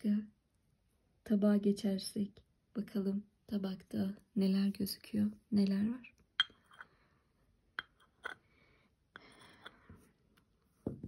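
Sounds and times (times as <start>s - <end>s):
cup and saucer clinking: 6.4s - 7.0s, 7.8s - 8.4s.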